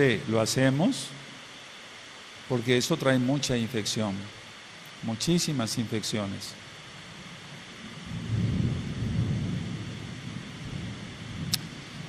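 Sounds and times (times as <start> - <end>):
rolling thunder: 7.2 - 12.0.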